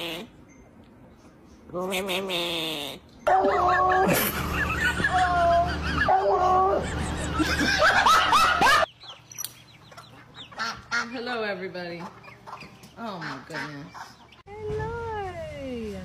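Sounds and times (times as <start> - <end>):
fowl chirping: 8.4 - 11.4, 12.0 - 14.4.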